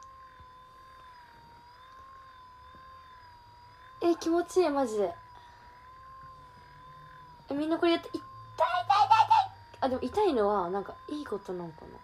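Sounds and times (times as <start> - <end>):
electric massager whining: 0.0 - 12.0
faint low hum: 0.0 - 12.0.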